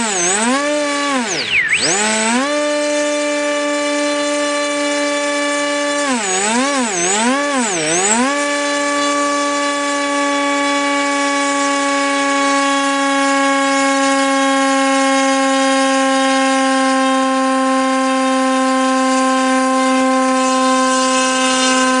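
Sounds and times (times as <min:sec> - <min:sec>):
electric motor propeller whine: 0:00.0 - 0:22.0.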